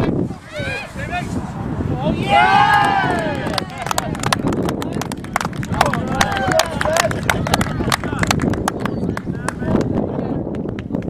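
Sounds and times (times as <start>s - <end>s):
faint shouting voices: 0.3s - 4.3s, 5.7s - 8.2s.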